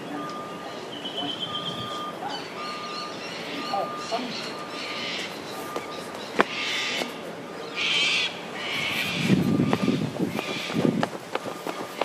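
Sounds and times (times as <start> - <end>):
bird cawing: 1.0 - 12.0
footsteps thudding: 5.7 - 7.1, 9.3 - 12.0.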